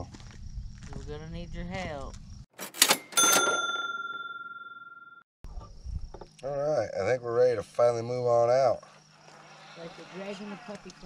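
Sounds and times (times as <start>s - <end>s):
bell-like ding: 2.9s - 5.2s.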